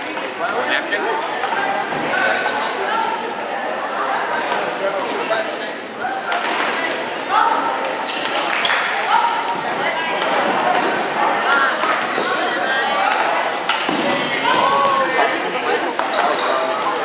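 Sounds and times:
spectators chatter: 0:00.0 - 0:17.0.

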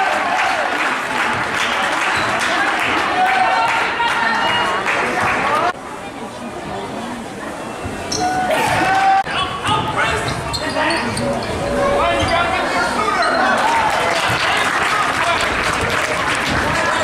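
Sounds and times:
crowd voices and shouts: 0:00.0 - 0:17.0
sneakers squeaking and running: 0:09.6 - 0:13.5.

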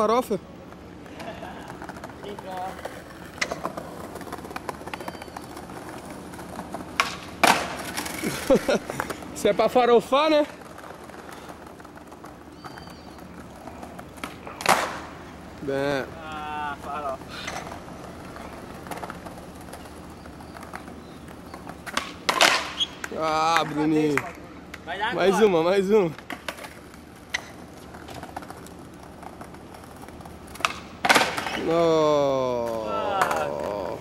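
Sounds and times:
skateboard clack: 0:00.0 - 0:34.0
skateboard wheels rolling on stone: 0:00.0 - 0:34.0.

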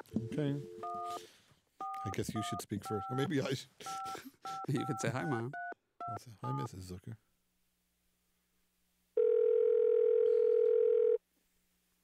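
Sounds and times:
telephone ringback tone: 0:09.2 - 0:11.2.

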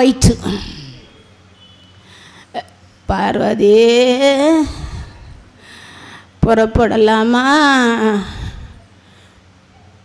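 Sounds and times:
woman drawing breath: 0:02.0 - 0:02.6, 0:04.9 - 0:06.4, 0:08.4 - 0:09.7.

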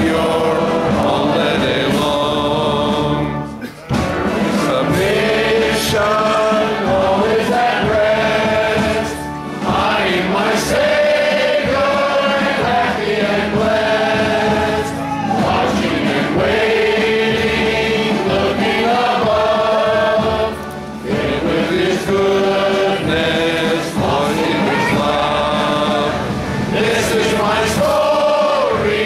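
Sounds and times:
congregation singing a hymn: 0:00.0 - 0:29.0.

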